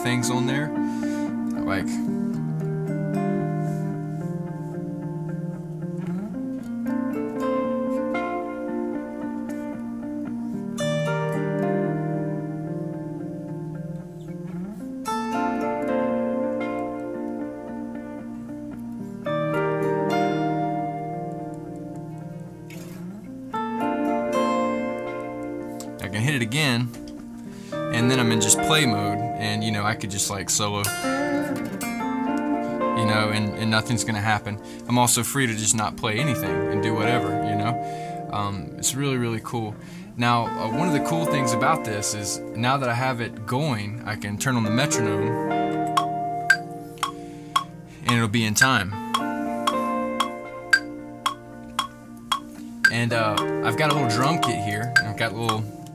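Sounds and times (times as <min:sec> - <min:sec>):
electric guitar sustained chords: 0:00.0 - 0:55.9
looped guitar part: 0:00.0 - 0:55.9
scratchy guitar strum: 0:24.1 - 0:43.3, 0:44.6 - 0:55.9
metronome clicking: 0:45.8 - 0:55.9.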